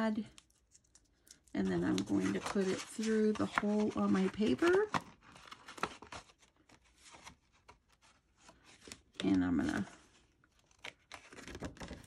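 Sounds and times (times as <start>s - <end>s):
cardstock rustling: 1.6s - 12.0s.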